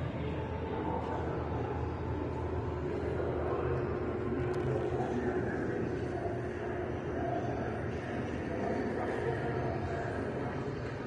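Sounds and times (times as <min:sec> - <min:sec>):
faint steady hum: 0:00.0 - 0:11.0
low room rumble: 0:00.0 - 0:11.0.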